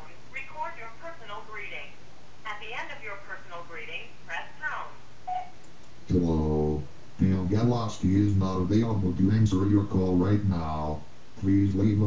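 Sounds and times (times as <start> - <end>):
steady low hum: 0.0 - 12.0
voice through phone speaker: 6.1 - 12.0.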